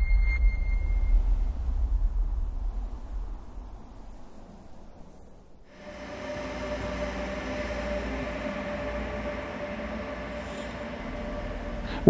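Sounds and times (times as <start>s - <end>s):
electric train rumble and hum: 0.0s - 12.0s.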